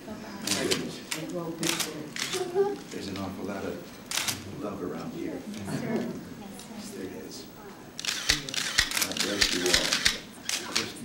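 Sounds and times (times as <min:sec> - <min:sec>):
camera shutters clicking rapidly: 0:00.5 - 0:02.5, 0:04.1 - 0:04.4, 0:08.0 - 0:11.0.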